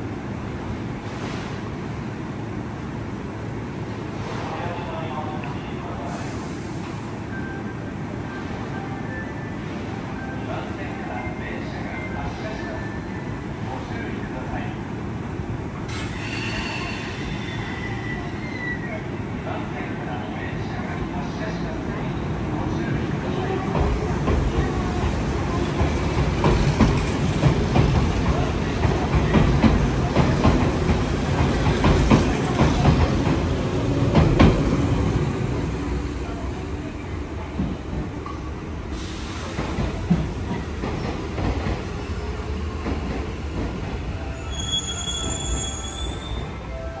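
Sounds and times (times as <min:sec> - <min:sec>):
electric train rumbling: 0:00.0 - 0:47.0
wheel squeal: 0:44.4 - 0:46.5.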